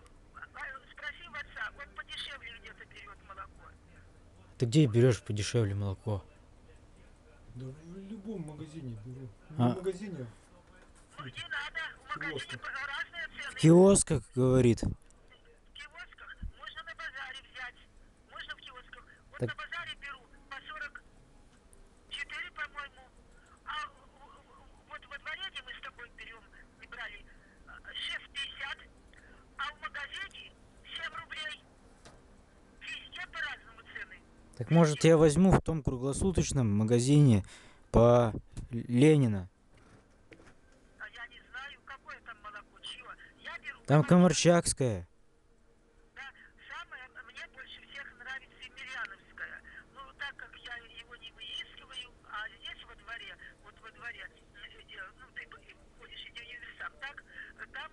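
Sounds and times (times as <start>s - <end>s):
low steady hum: 0.0s - 57.9s
person talking over telephone: 14.8s - 21.0s, 29.6s - 31.6s, 46.2s - 57.9s.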